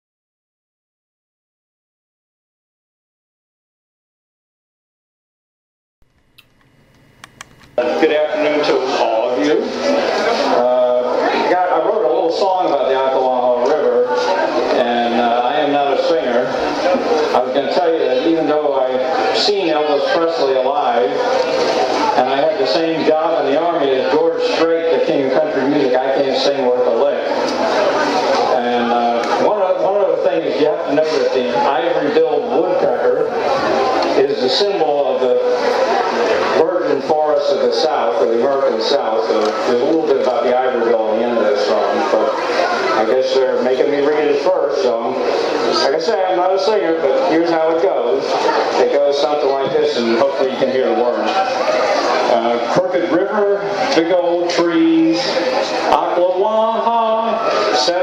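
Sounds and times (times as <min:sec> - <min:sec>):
man talking: 0:07.8 - 0:09.9, 0:10.5 - 0:21.3, 0:22.1 - 0:27.4, 0:28.5 - 0:33.4, 0:34.2 - 0:35.6, 0:36.5 - 0:51.5, 0:52.3 - 0:58.0
man speaking over amplification: 0:07.8 - 0:27.8, 0:28.4 - 0:58.0.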